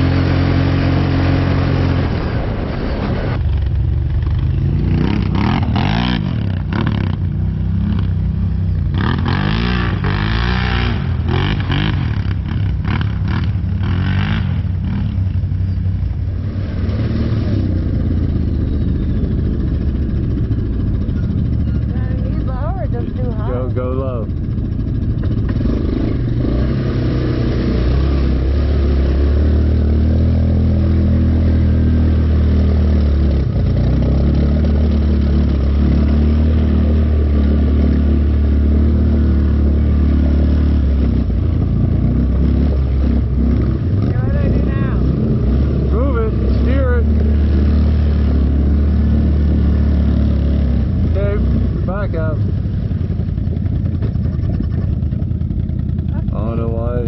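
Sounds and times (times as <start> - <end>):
quad bike engine revving: 0.0 - 57.0.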